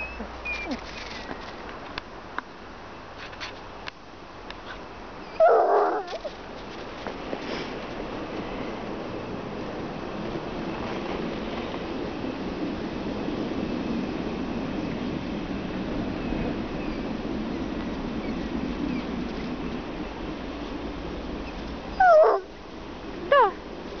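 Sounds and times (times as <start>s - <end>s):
dog whining: 0.0s - 1.2s, 5.2s - 6.4s, 21.9s - 22.5s, 23.2s - 23.6s
steady background hiss: 0.0s - 24.0s.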